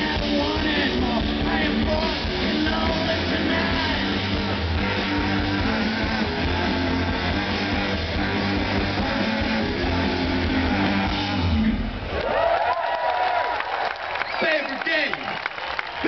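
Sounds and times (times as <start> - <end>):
rock band playing live: 0.0 - 12.1
crowd cheering and whooping: 3.2 - 16.0.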